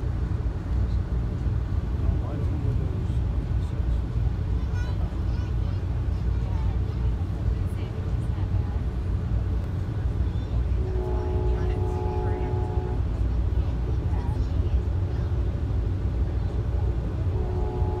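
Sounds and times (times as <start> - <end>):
train coach rumbling: 0.0 - 18.0
muffled train horn: 10.7 - 13.2, 17.3 - 18.0.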